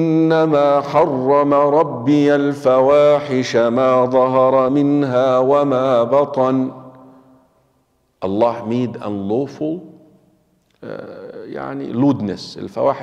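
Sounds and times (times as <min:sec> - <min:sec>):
man chanting: 0:00.0 - 0:07.1, 0:08.2 - 0:10.0, 0:10.8 - 0:13.0.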